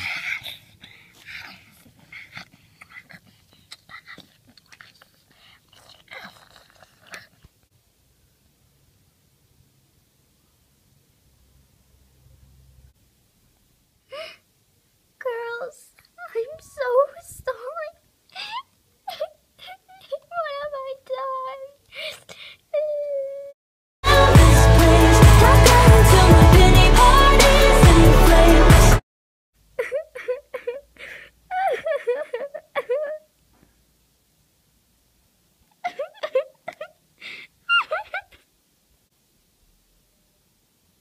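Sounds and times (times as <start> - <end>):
child making mock eating noises: 2.1 - 7.4, 15.2 - 23.5
girl whimpering and wailing: 15.2 - 23.6, 29.8 - 33.3, 37.7 - 38.4.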